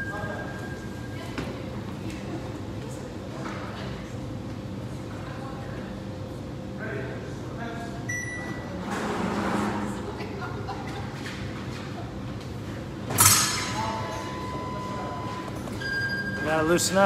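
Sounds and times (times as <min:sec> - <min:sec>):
steady electronic beep: 0:13.8 - 0:16.7.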